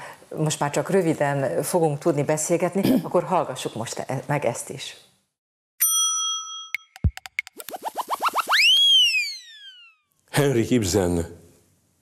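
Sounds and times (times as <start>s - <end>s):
ringing ding: 5.8s - 7.4s
short rising chirps: 7.0s - 10.1s
rising and falling zing: 7.4s - 10.0s.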